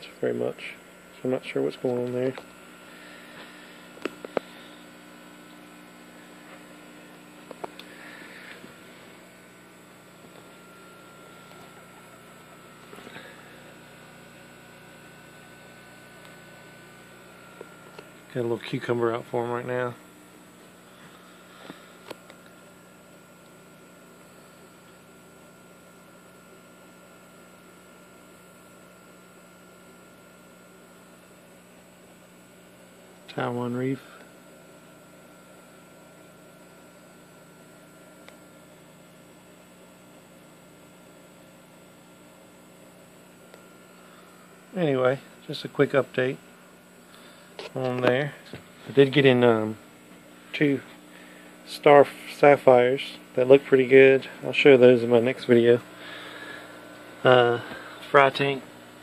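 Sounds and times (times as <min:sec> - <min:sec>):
electrical hum of aquarium equipment: 0:00.0 - 0:59.0.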